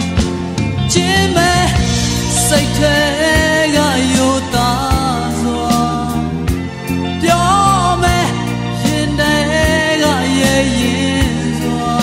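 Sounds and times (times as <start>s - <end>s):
pop song with full band: 0.0s - 12.0s.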